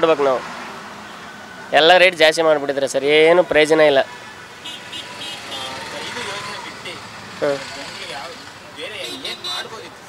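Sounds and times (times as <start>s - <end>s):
passing traffic: 0.0s - 10.0s
man saying haan: 8.1s - 9.9s.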